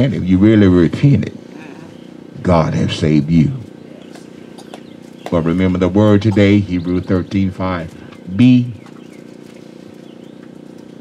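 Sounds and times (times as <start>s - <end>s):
low electrical hum and buzz: 0.0s - 11.0s
faint bird chirp: 1.4s - 2.3s, 3.7s - 11.0s.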